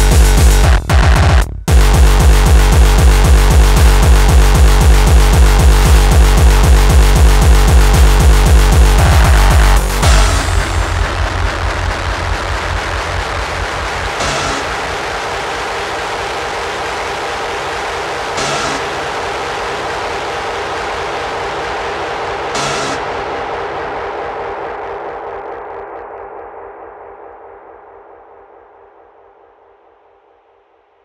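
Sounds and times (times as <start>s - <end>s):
distorted rumbling drone: 0.0s - 30.4s.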